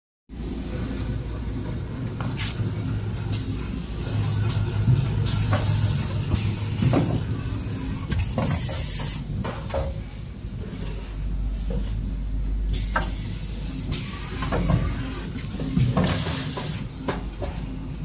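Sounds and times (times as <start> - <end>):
packing machine hum: 0.4 - 18.0
machine hisses: 16.0 - 16.9.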